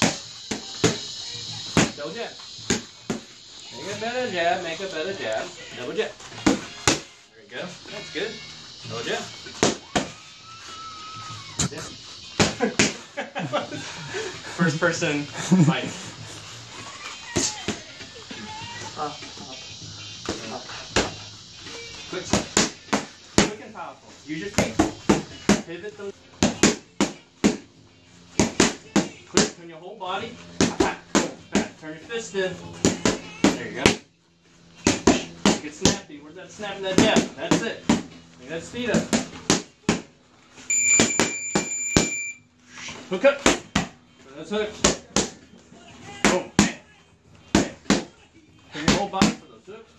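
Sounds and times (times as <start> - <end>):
boxing gloves punching focus mitts: 2.6 - 3.3, 6.2 - 7.2, 9.4 - 10.6, 12.3 - 13.0, 22.2 - 23.6, 24.5 - 25.7, 26.3 - 27.7, 28.3 - 29.6, 30.5 - 31.8, 32.7 - 34.0, 34.7 - 36.0, 36.9 - 38.2, 38.8 - 40.1, 40.9 - 42.2, 43.4 - 44.0, 44.7 - 45.4, 47.4 - 49.4
gloved punches hitting focus mitts: 6.4 - 7.1, 22.3 - 23.6, 26.4 - 27.7, 28.4 - 29.6, 30.6 - 31.8, 34.8 - 36.0, 38.9 - 40.1
high electronic beep: 40.7 - 42.4.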